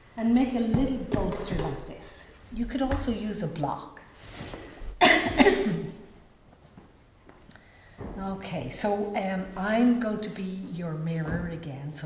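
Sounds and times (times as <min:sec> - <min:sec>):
woman coughing: 0:05.0 - 0:06.0.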